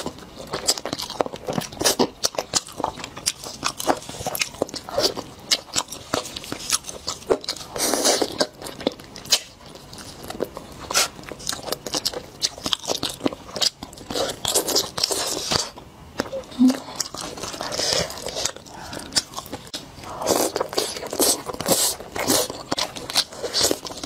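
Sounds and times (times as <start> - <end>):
chewing chicken close-up: 0.0 - 24.0.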